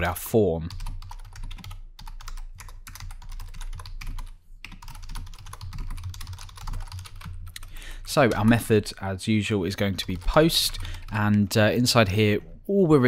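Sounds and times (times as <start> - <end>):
rapid typing on keyboard: 0.6 - 8.8, 9.7 - 12.0.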